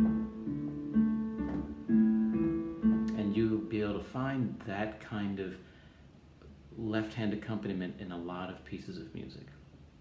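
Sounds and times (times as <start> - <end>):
digital piano broken chords: 0.0 - 4.6.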